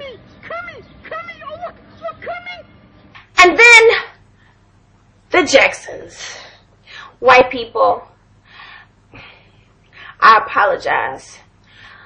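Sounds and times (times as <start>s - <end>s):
woman breathing softly: 8.4s - 10.2s, 11.6s - 12.0s.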